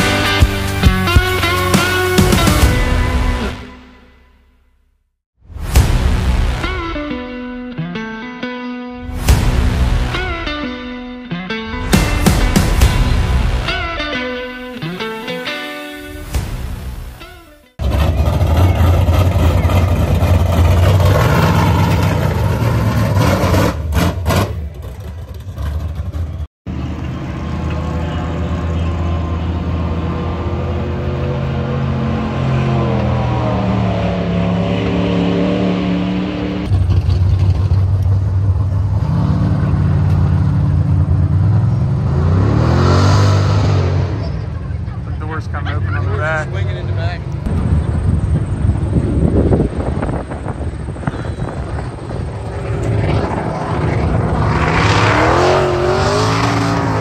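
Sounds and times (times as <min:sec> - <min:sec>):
vehicle engines accelerating: 0:09.0 - 0:57.0.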